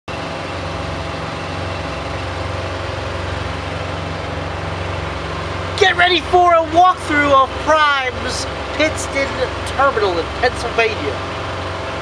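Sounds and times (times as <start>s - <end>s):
diesel truck engine idling: 0.1s - 12.0s
man speaking: 5.8s - 11.2s.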